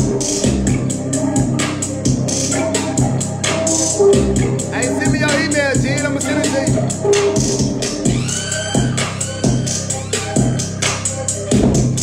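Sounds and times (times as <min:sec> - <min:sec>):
hip-hop beat: 0:00.0 - 0:12.0.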